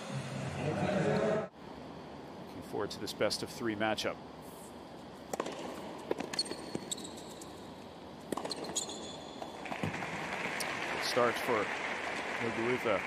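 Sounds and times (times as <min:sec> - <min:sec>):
tennis ball struck by rackets: 0:05.3 - 0:06.9, 0:08.3 - 0:08.9
shoes squeaking on court: 0:05.3 - 0:10.0
crowd applause: 0:09.7 - 0:13.0.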